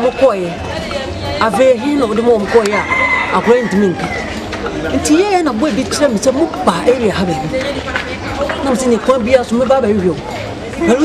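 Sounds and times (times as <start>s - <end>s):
rooster crowing: 2.4s - 4.3s.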